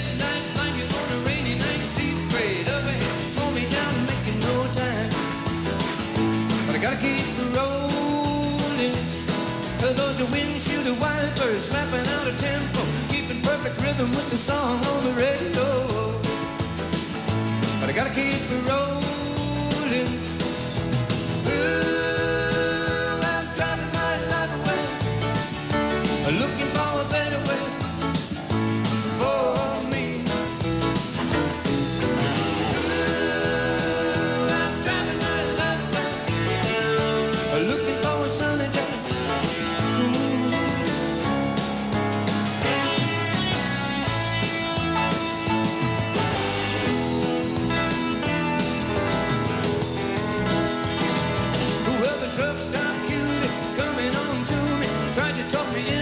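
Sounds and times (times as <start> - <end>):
country-rock band playing: 0.0 - 56.0.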